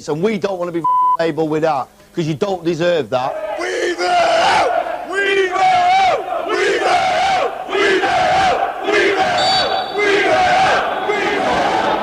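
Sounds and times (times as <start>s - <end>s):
men chanting shouts: 3.3s - 12.0s.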